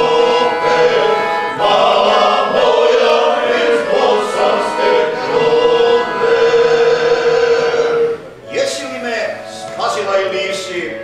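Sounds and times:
male group singing: 0.0s - 8.2s
accordion: 0.0s - 11.0s.

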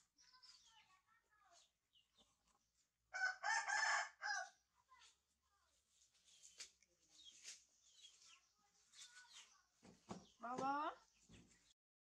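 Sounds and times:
rooster crowing: 3.1s - 4.6s.

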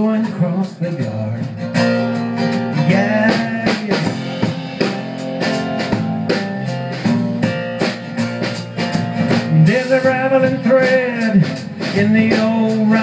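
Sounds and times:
drum kit beat: 0.0s - 13.0s
electric bass: 0.0s - 13.0s
strummed acoustic guitar: 0.0s - 13.0s.

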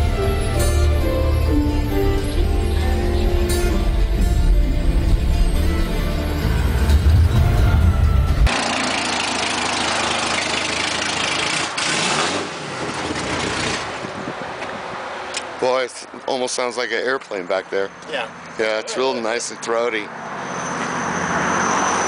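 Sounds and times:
film music with heavy bass: 0.0s - 9.2s
race car engine running: 6.6s - 14.2s.

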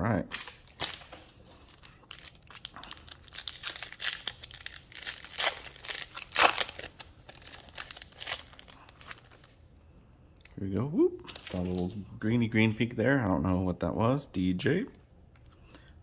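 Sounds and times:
foil wrapper crinkling and tearing: 0.3s - 9.6s.

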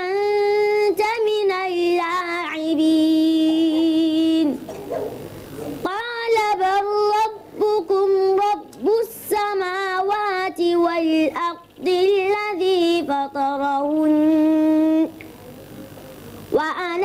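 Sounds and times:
boy chanting recitation: 0.0s - 5.1s, 5.7s - 15.3s, 16.5s - 17.0s.

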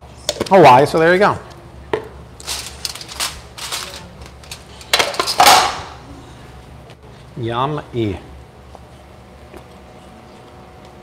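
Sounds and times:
utensils and dishes clinking: 2.4s - 5.8s.

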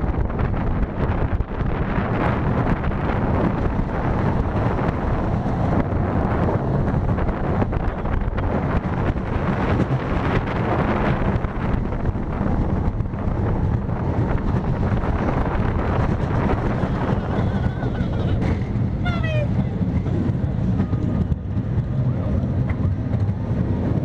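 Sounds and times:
wheels rumbling on steel track: 0.0s - 24.0s
wind on microphone: 0.0s - 24.0s.

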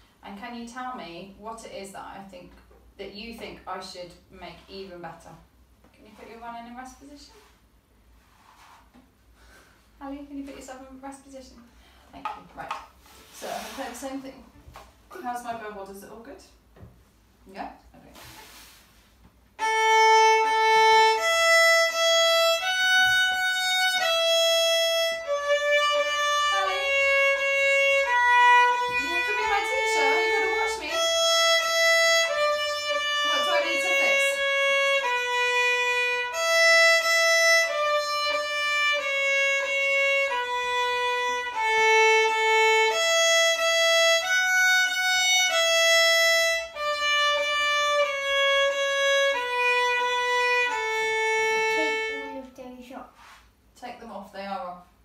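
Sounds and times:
bowed violin melody: 19.6s - 52.5s.

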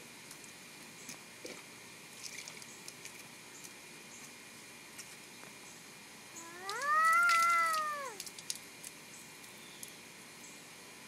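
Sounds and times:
toddler's high-pitched call: 6.4s - 8.2s.

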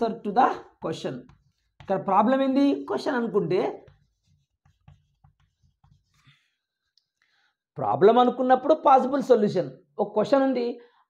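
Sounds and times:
chalk tapping on blackboard: 0.6s - 6.5s.

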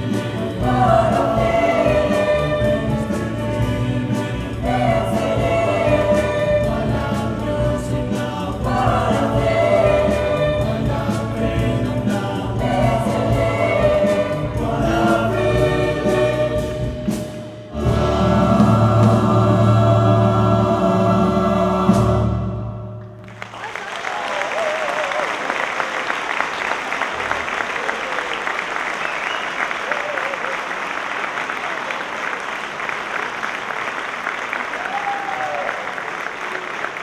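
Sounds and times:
wind band playing: 0.0s - 22.8s
choir singing: 0.0s - 23.0s
audience applause: 23.2s - 37.0s.

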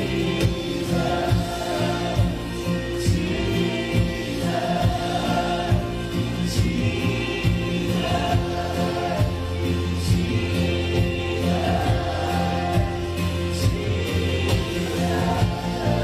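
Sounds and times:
acoustic and electric guitars: 0.0s - 16.0s
drums keeping a steady beat: 0.0s - 16.0s
keyboard: 0.0s - 16.0s
voices singing: 0.0s - 16.0s.

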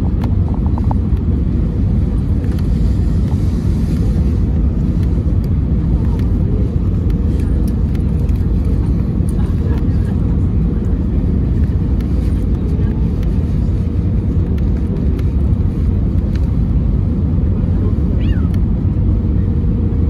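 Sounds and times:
engine and airflow rumble: 0.0s - 20.0s.

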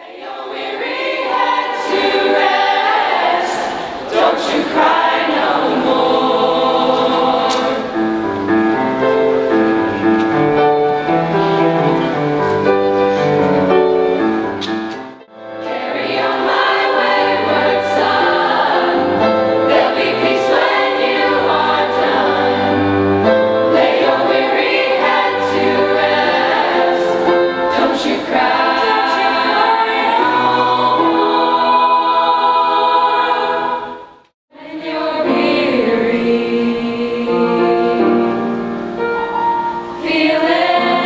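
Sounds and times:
youth choir singing: 0.0s - 8.5s, 15.5s - 41.0s.

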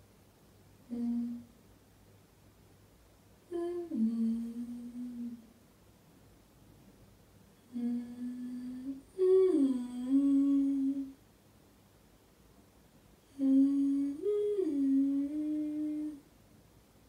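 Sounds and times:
woman humming: 0.9s - 1.5s, 3.5s - 5.5s, 7.6s - 11.2s, 13.3s - 16.2s.

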